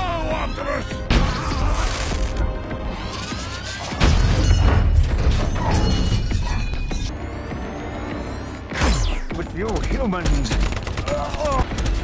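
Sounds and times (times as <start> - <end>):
rapid gunfire crackling: 9.4 - 12.0.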